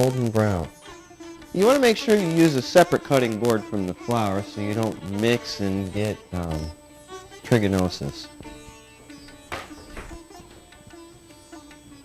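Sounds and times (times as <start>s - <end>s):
held drone note: 0.0s - 12.0s
plucked string instrument music: 0.0s - 12.0s
faint knocks: 8.4s - 11.8s.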